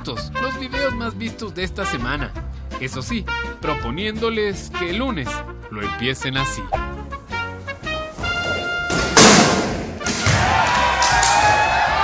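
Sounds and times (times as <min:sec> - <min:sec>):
person speaking: 0:04.8 - 0:07.0.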